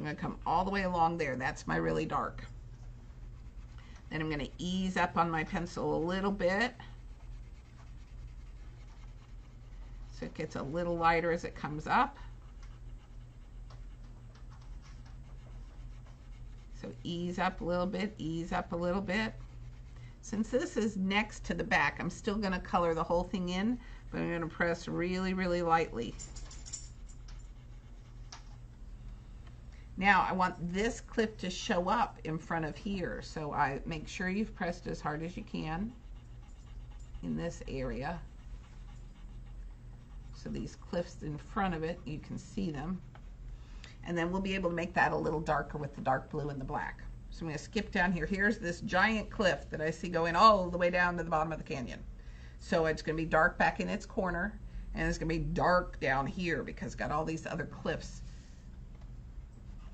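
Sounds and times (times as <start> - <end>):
faint low hum: 0.0 - 59.9
pencil scratching on paper: 3.1 - 21.4, 27.0 - 28.6.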